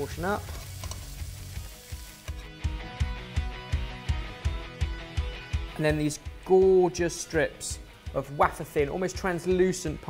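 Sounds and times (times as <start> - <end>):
gnocchi sizzling in a pan: 0.0 - 2.6
background music with steady beat: 0.0 - 10.0.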